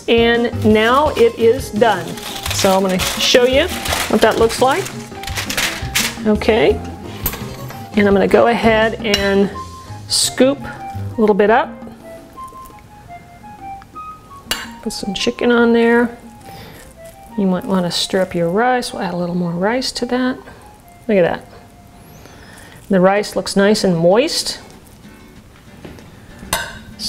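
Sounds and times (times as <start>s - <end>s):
faint background music: 0.0s - 27.0s.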